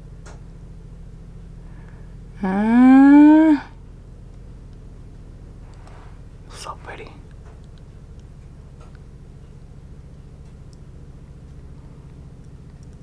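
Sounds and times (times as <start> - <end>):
woman humming mmm: 2.4 - 3.8.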